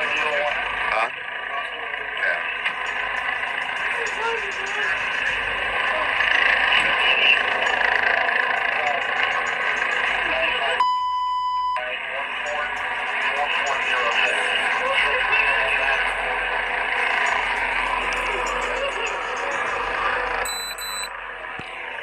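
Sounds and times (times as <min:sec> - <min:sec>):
steady rushing background: 0:00.0 - 0:10.8, 0:12.0 - 0:22.0
muffled indistinct voices: 0:00.0 - 0:22.0
police radio chatter: 0:00.0 - 0:22.0
high steady beep: 0:10.8 - 0:11.9, 0:20.4 - 0:21.2.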